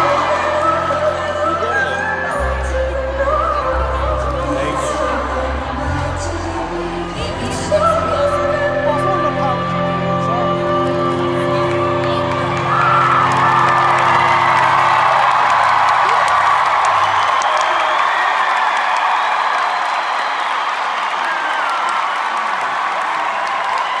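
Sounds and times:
crowd cheering and whooping: 0.0s - 8.0s, 11.6s - 24.0s.

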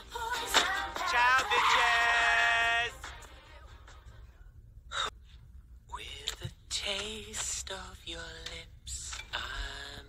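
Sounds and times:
person singing: 0.0s - 3.8s
faint low hum: 0.0s - 10.0s.

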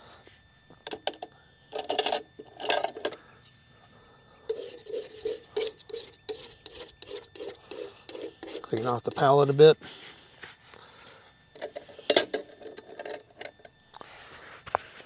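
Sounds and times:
scraping on painting palette: 4.5s - 10.0s.

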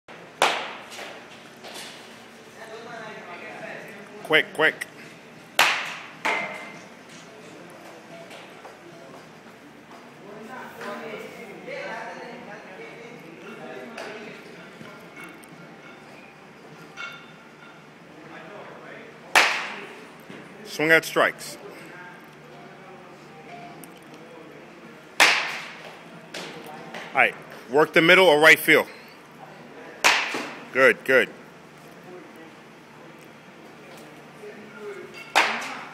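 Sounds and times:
baseball bat cracking a ball: 0.4s - 0.8s, 5.6s - 6.5s, 19.3s - 19.8s, 25.2s - 25.8s, 30.0s - 30.6s.

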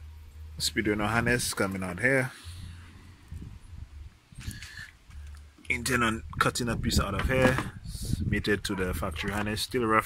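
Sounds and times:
wind buffeting microphone: 0.8s - 1.7s, 2.5s - 5.2s, 5.8s - 10.0s.

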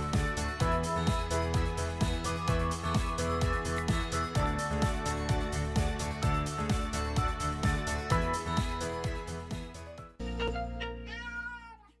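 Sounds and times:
cat meowing: 11.1s - 12.0s.

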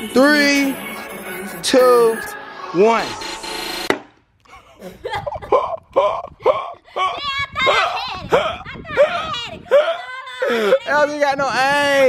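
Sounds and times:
rising whoosh: 1.0s - 4.2s
laughter: 4.5s - 9.1s.

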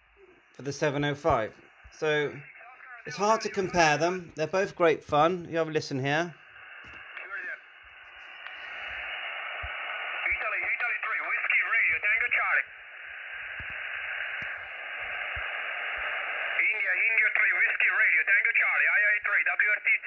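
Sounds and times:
radio band noise hiss: 0.0s - 20.0s
distant voice over radio: 10.1s - 12.7s.

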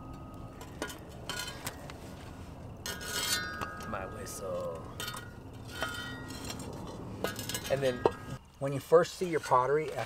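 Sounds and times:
pottery clinking: 0.0s - 1.9s, 2.7s - 8.4s.

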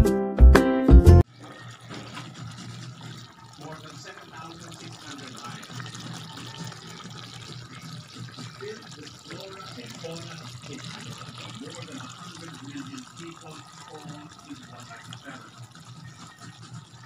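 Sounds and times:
faint voices: 3.6s - 17.0s.

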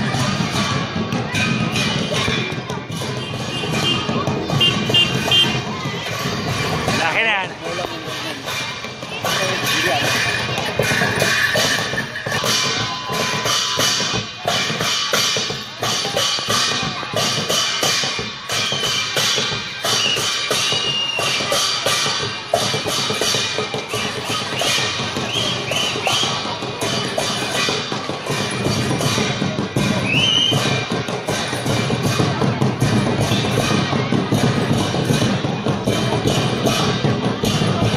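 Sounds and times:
barrel drums fast beat: 0.0s - 37.9s.

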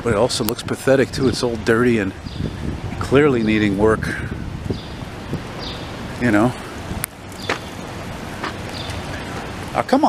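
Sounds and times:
low hum of traffic: 0.0s - 10.0s
wind: 0.0s - 10.0s.

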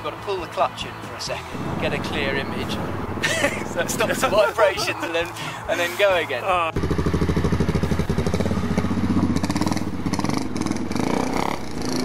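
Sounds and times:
motorcycle engine at low revs: 1.6s - 4.3s, 6.8s - 12.0s.

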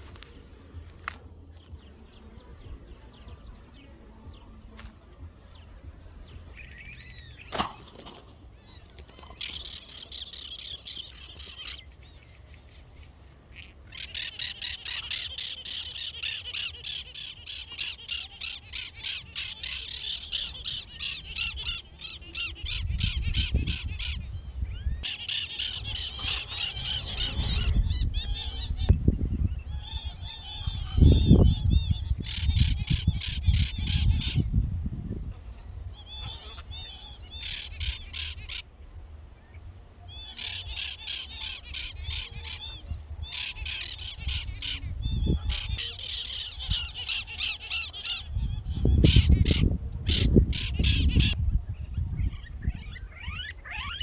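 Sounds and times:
birds chattering harshly: 1.6s - 34.6s, 35.2s - 38.7s, 40.1s - 54.0s.

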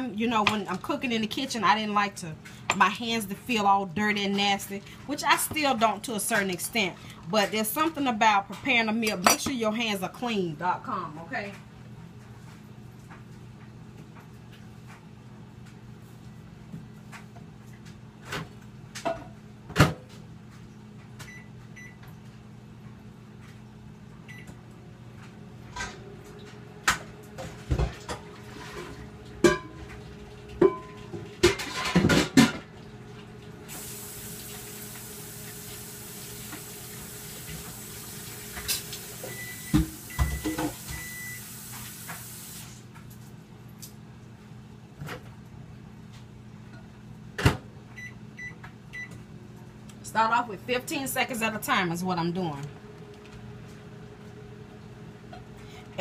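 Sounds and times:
microwave oven humming: 0.0s - 56.0s
dishes clattering: 27.7s - 29.8s, 30.6s - 32.7s
microwave short beeps: 39.2s - 41.5s, 48.0s - 49.2s.

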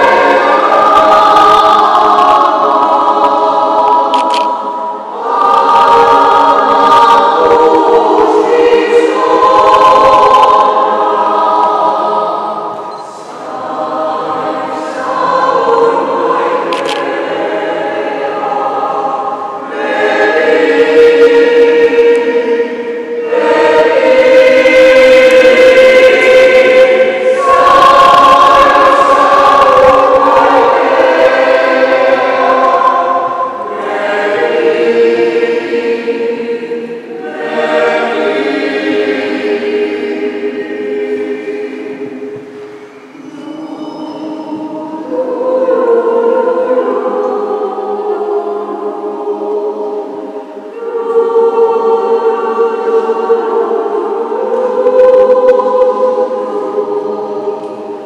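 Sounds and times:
mixed choir singing chords: 0.0s - 58.0s.

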